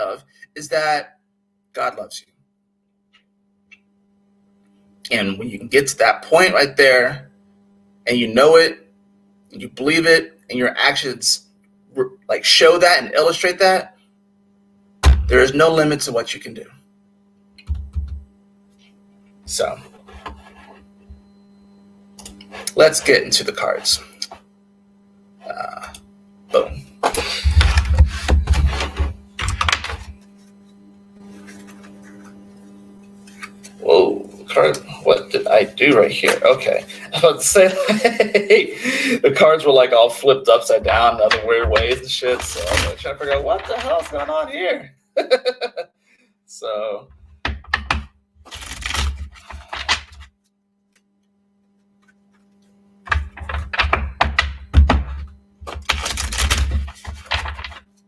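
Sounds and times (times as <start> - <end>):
cards being shuffled: 27.1 - 34.9, 40.9 - 44.4, 48.5 - 54.6, 55.6 - 58.0
cards clicking and tapping: 47.5 - 50.3, 53.1 - 57.8.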